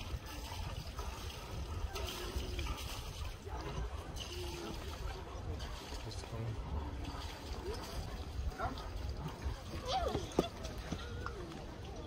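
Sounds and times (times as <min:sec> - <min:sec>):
passersby talking: 0:00.0 - 0:12.0
footsteps on pavement: 0:09.7 - 0:11.7.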